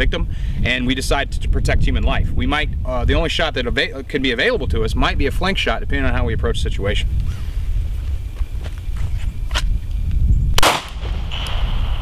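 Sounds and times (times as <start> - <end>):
low background rumble: 0.0 - 12.0
handgun shot: 10.6 - 11.9.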